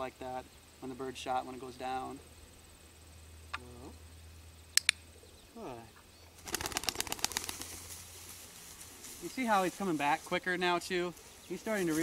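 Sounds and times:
pigeon wings flapping: 6.4 - 8.1.

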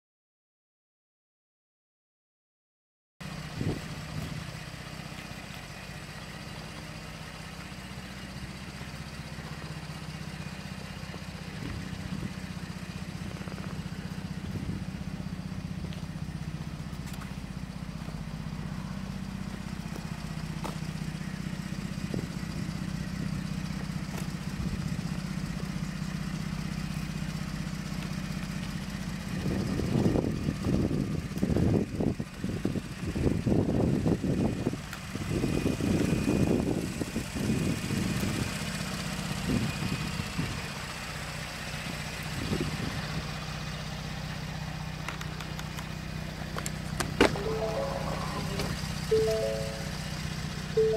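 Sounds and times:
truck engine idling: 3.2 - 34.5, 40.3 - 50.9.

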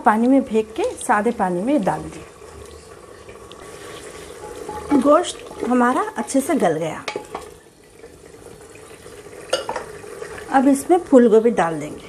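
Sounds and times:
ladle scraping and sloshing gravy: 0.2 - 6.1, 7.1 - 10.6.

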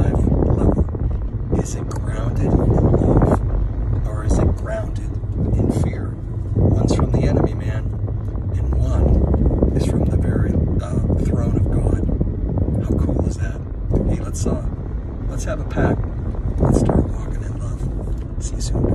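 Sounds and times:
man talking: 0.0 - 0.9, 1.5 - 3.4, 4.0 - 12.1, 12.8 - 16.0, 16.6 - 18.9
road and engine rumble: 0.0 - 18.9.

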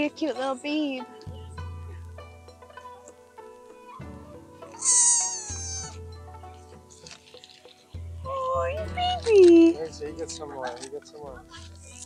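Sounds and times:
background music: 0.0 - 12.0
deer high-pitched call: 4.8 - 6.0.

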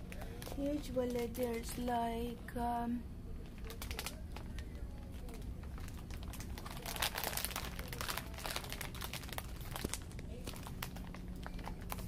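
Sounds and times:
plastic package crinkling: 0.1 - 1.9, 3.4 - 12.0.

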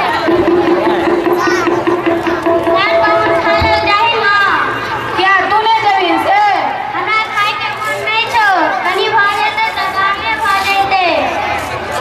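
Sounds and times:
high-pitched voice through loudspeaker: 1.0 - 11.5.

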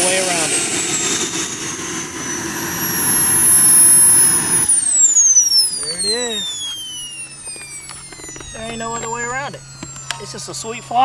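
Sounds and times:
model jet turbine whine: 0.0 - 11.0
turbine air rush: 0.0 - 11.0.

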